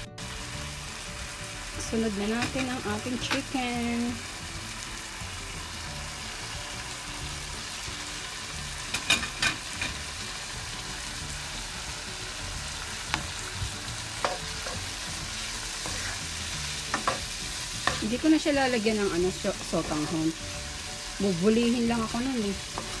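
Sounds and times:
vegetables sizzling in a pan: 0:00.0 - 0:23.0.

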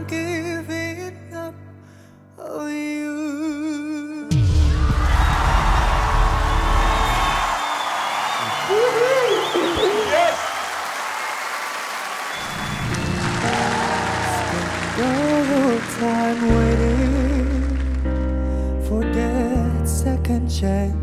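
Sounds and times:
man singing: 0:00.0 - 0:04.5, 0:14.2 - 0:18.0, 0:18.8 - 0:21.0
slow soft ballad: 0:00.0 - 0:04.6, 0:13.0 - 0:21.0
rising whoops: 0:04.6 - 0:16.3
audience applauding and cheering: 0:04.6 - 0:18.3.

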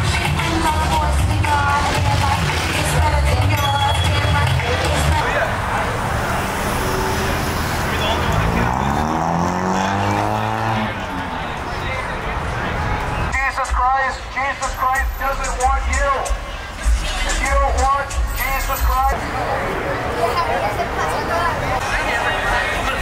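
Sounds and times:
music with vocals: 0:00.0 - 0:05.8, 0:13.3 - 0:19.2
street noise: 0:00.0 - 0:23.0
car engine revving past: 0:05.4 - 0:11.6.

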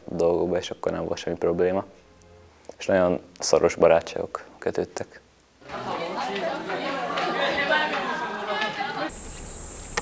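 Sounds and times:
people talking at once: 0:05.6 - 0:09.1
high-pitched buzz: 0:09.1 - 0:10.0.

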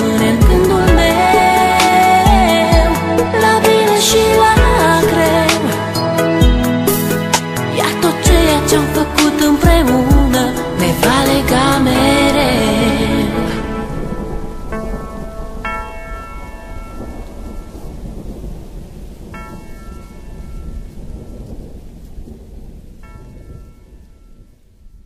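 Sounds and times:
rain: 0:00.0 - 0:06.0, 0:06.8 - 0:25.0
low rumbling thunder: 0:06.5 - 0:25.0.

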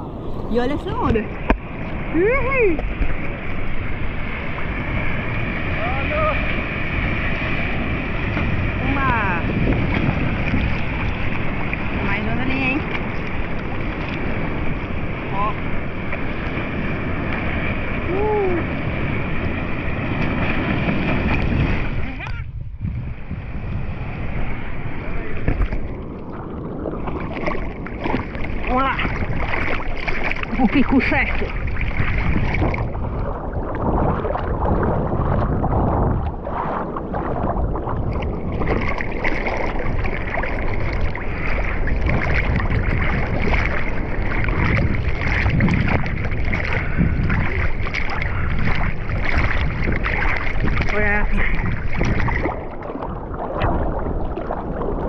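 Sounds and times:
seawater sloshing and lapping: 0:00.0 - 0:22.4, 0:24.4 - 0:55.0
wind on microphone: 0:00.0 - 0:55.0.

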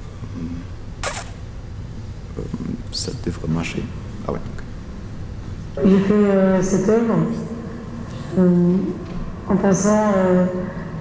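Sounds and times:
short hissy noise: 0:01.0 - 0:01.4
loudspeaker low hum: 0:02.0 - 0:11.0.

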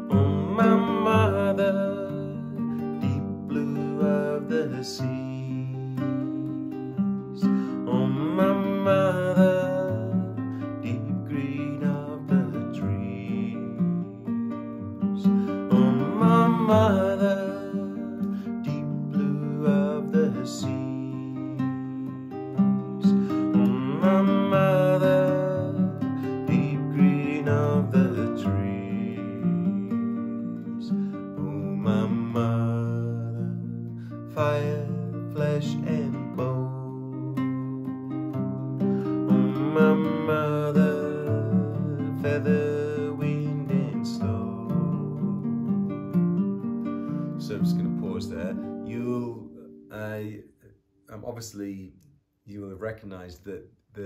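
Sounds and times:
man singing gently: 0:00.0 - 0:38.1, 0:39.1 - 0:45.7, 0:47.1 - 0:51.9, 0:52.5 - 0:54.0
nylon string guitar strumming: 0:00.0 - 0:50.4.

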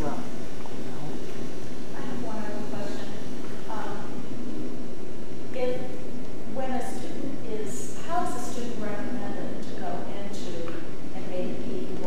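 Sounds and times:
person talking: 0:00.0 - 0:04.6, 0:05.6 - 0:12.0.

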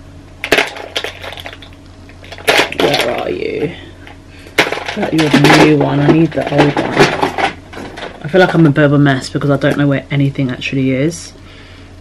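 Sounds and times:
makeup products clicking and clattering: 0:00.4 - 0:03.3, 0:04.6 - 0:08.6.

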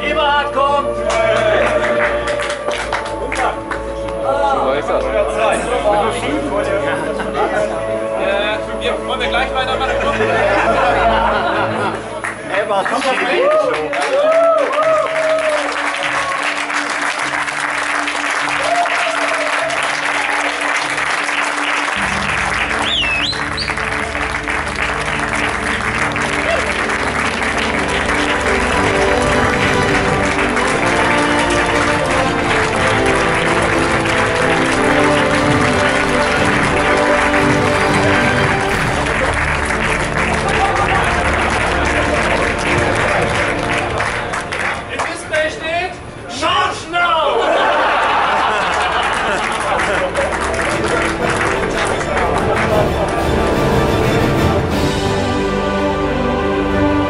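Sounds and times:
background music: 0:00.0 - 0:57.0
crowd clapping: 0:00.8 - 0:06.8, 0:10.2 - 0:46.0, 0:47.4 - 0:55.4
crowd laughing: 0:01.1 - 0:08.2, 0:09.4 - 0:14.2, 0:22.0 - 0:45.0, 0:47.2 - 0:54.8.

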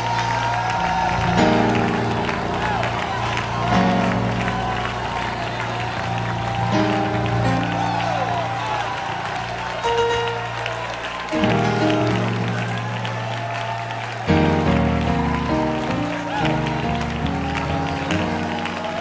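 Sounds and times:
congregation clapping: 0:00.0 - 0:19.0
worship band playing chords: 0:00.0 - 0:19.0.

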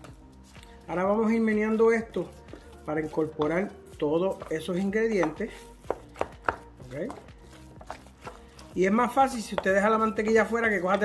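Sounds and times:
utensil stirring thick mash: 0:00.0 - 0:11.0
utensil knocking glass bowl: 0:09.2 - 0:11.0.

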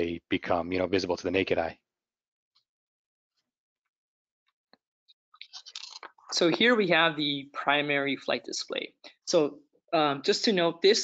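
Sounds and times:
mouth clicks and breath: 0:05.4 - 0:06.4.

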